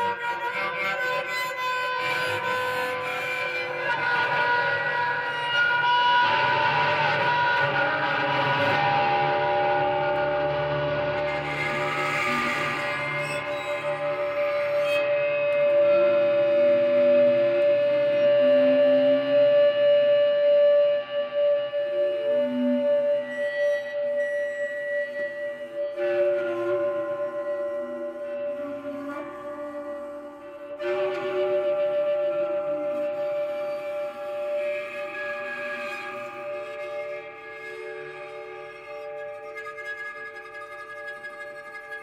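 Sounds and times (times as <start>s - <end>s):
bowed guitar notes: 0.0s - 42.0s.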